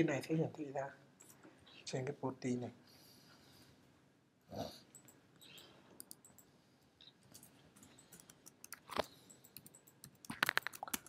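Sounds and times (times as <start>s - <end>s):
keyboard and mouse clicks: 4.9s - 11.0s.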